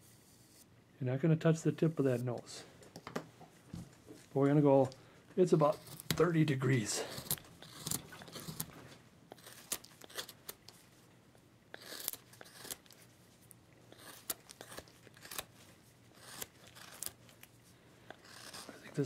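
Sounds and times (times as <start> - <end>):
chisel scraping wood: 5.5 - 8.7, 11.7 - 12.9, 13.9 - 15.5, 16.2 - 17.2, 18.1 - 19.0
chisel cracking wood chips: 16.2 - 17.2.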